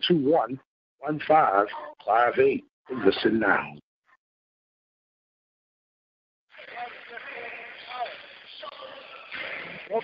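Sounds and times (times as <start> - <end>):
arena noise: 6.5 - 10.0
indistinct background voices: 6.5 - 10.0.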